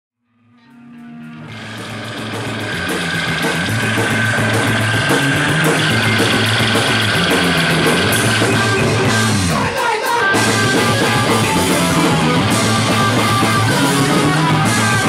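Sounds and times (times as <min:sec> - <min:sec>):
loud rock band playing: 0:00.7 - 0:15.0.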